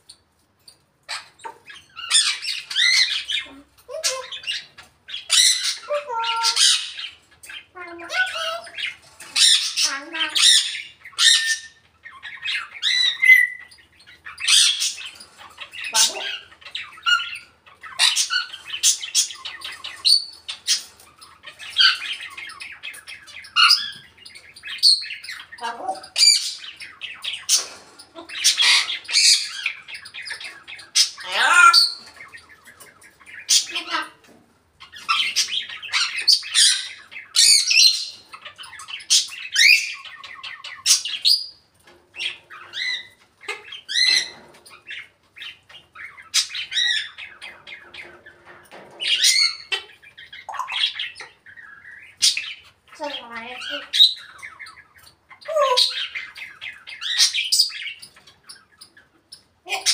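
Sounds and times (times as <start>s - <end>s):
parrot squawking: 1.0s - 41.6s, 42.2s - 48.4s, 49.0s - 59.9s.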